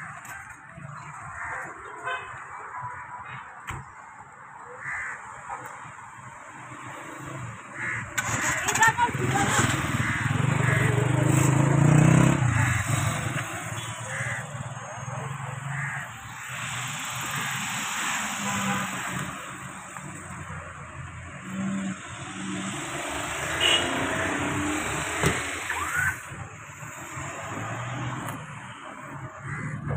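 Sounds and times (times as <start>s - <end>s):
road traffic from inside car: 5.8s - 29.9s
voices talking: 8.2s - 22.8s.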